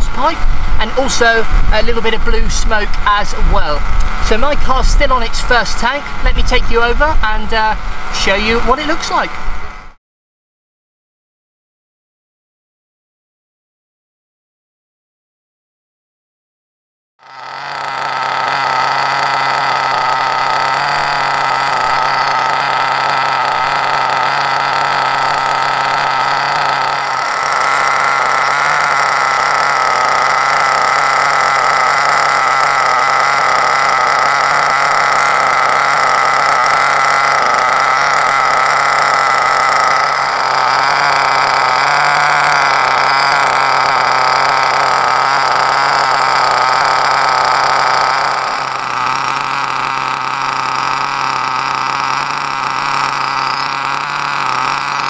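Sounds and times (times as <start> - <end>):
two-stroke nitro engine idling: 0.0 - 10.0, 17.2 - 55.0.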